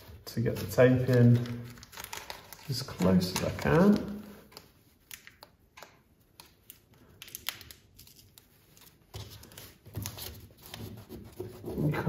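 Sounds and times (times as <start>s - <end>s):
tape crinkles and clicks: 0.2s - 10.8s.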